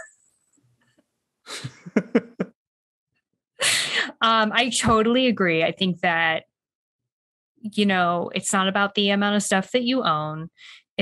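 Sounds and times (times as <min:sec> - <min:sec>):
person laughing breathily: 0:01.5 - 0:02.5.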